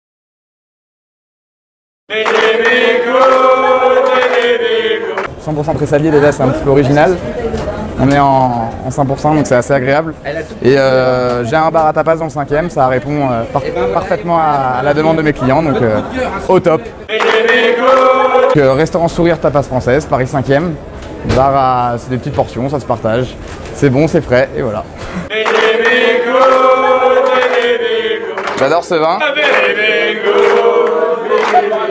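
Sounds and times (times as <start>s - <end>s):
voices singing a chant-like chord: 2.1s - 5.3s, 17.1s - 18.6s, 25.3s - 31.9s.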